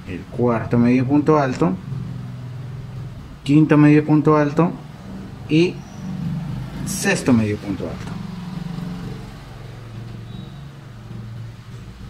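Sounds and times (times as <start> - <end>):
low engine-like hum: 1.0 - 12.0.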